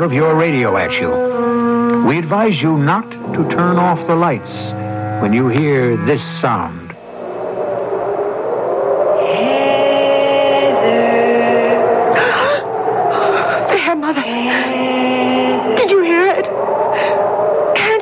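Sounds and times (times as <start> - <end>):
eerie voice-like ghost wail: 7.1 - 18.0.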